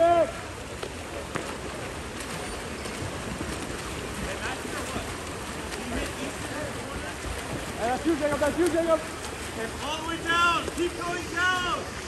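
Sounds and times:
swimmers splashing in pool: 0.0 - 12.0.

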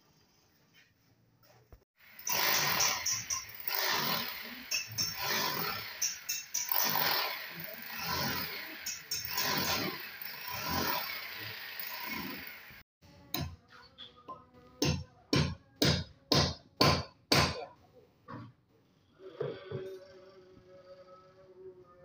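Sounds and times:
demolition hammer breaking tile: 2.2 - 7.2.

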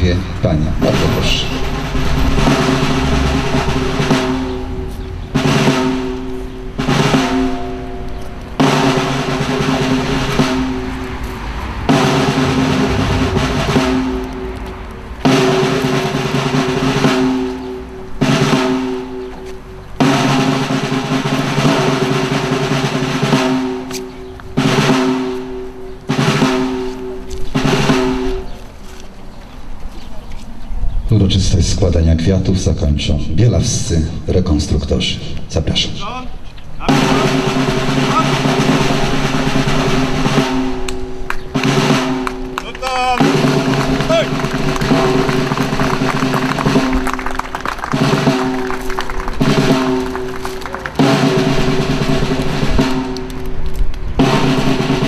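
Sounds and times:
snare drum rolls: 0.6 - 19.4, 20.0 - 28.6, 36.8 - 55.0.

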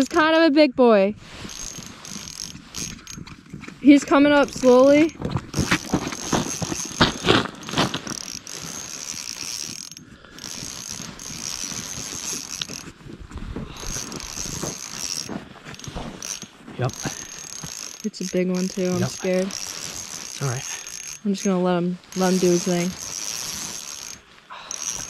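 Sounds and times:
high thin reel whine: 1.2 - 13.0, 13.7 - 25.0
fishing reel gears clicking: 1.4 - 7.2, 8.1 - 13.0, 13.7 - 25.0.

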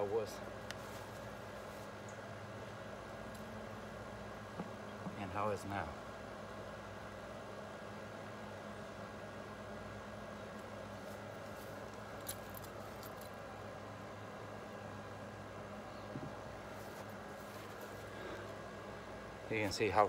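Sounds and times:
background hum and hiss: 0.0 - 20.0.

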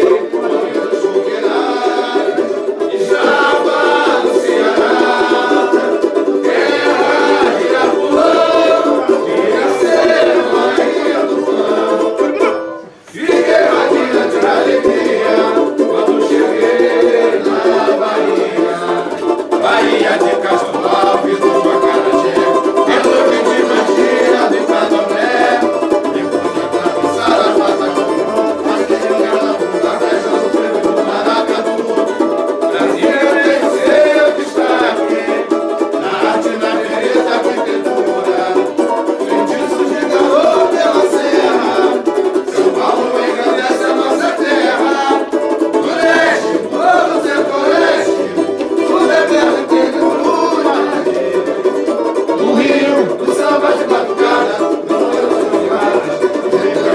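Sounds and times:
group singing along: 0.0 - 56.9
small banjos strummed quickly: 0.0 - 56.9.

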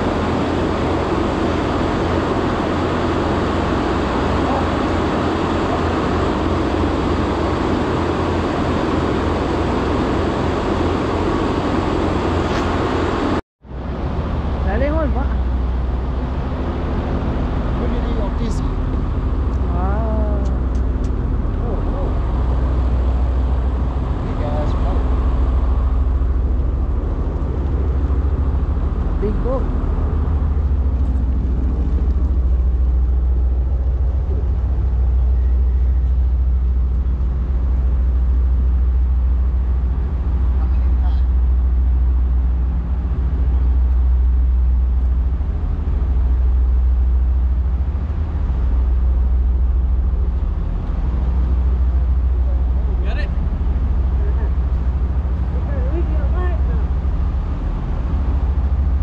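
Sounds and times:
low hum: 0.0 - 59.0
ship engines rumbling: 0.0 - 59.0.

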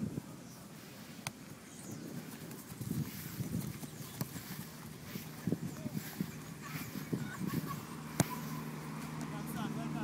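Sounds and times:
ball touches on grass: 1.2 - 1.5, 2.3 - 6.3, 8.1 - 9.4
running footsteps on grass: 2.0 - 9.4.

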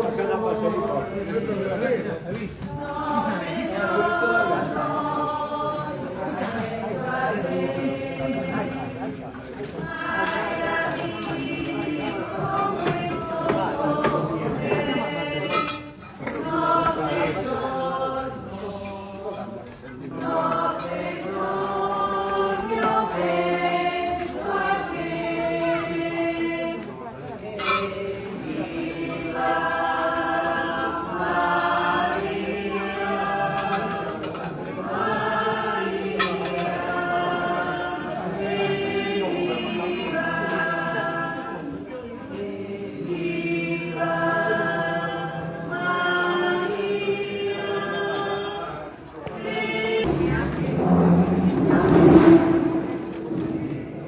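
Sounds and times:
group singing a hymn: 0.0 - 54.0.

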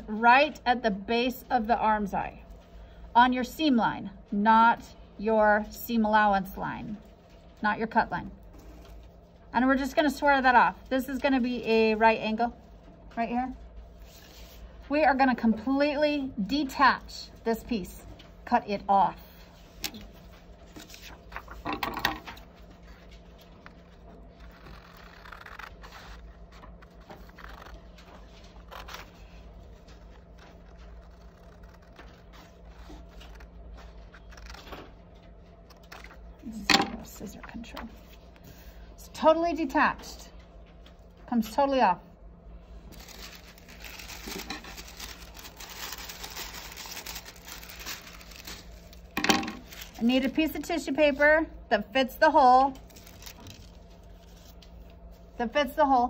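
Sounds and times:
paper rustling: 19.4 - 36.2, 42.9 - 50.4, 52.8 - 55.0.

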